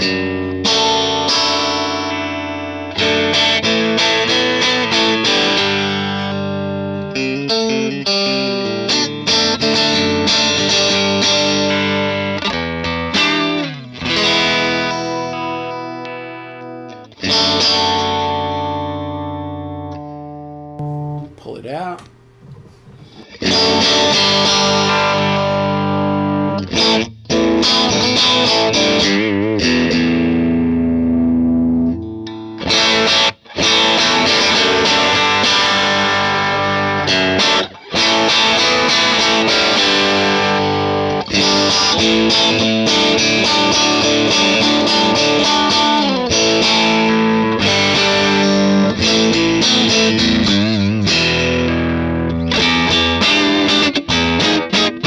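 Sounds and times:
overdriven electric guitar: 0.0 - 21.4, 22.0 - 55.0.

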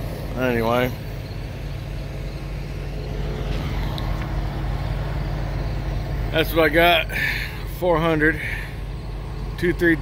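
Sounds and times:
diesel truck idling: 0.0 - 10.0.

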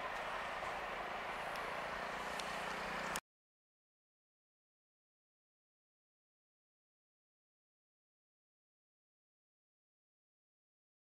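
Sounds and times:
faint clicks: 0.0 - 0.8, 1.4 - 3.2
low hum: 0.0 - 3.2
train wheels on track: 0.0 - 3.2.

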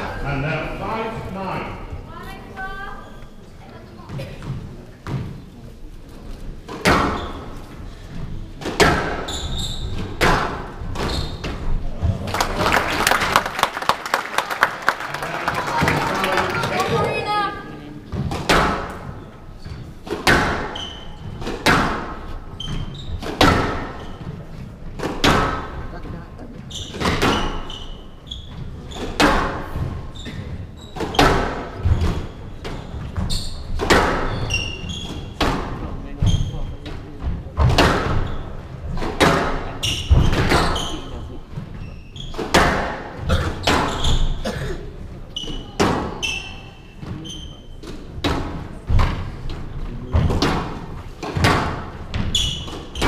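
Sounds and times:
squash ball striking rackets and walls: 6.6 - 12.2, 18.1 - 25.9, 26.8 - 44.5, 45.4 - 53.0.

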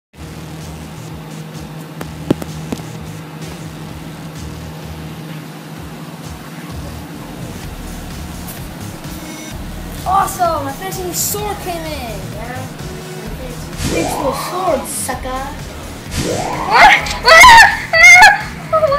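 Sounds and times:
steady low hum: 0.2 - 18.0.

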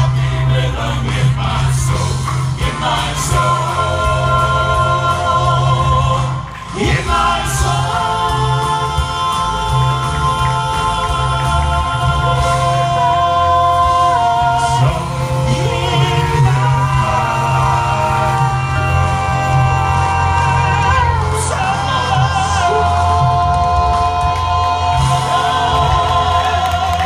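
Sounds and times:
low bass accompaniment: 0.0 - 27.0
male quartet singing in harmony: 0.0 - 27.0.

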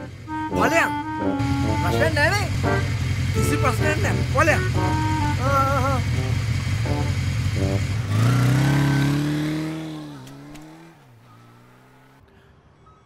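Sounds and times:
motorcycle engine idling and revving: 0.0 - 12.3.

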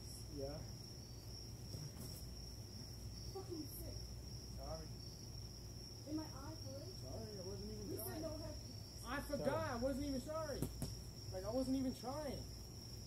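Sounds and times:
crickets chirring: 0.0 - 13.0.

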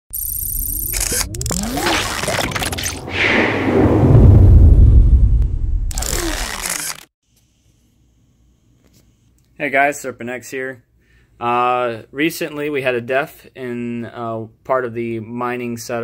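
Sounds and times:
crackles: 0.2 - 3.2, 5.4 - 7.1
whooshes: 1.5 - 7.0
gliding sweeps: 1.9 - 5.5
deep boom: 3.0 - 6.0.

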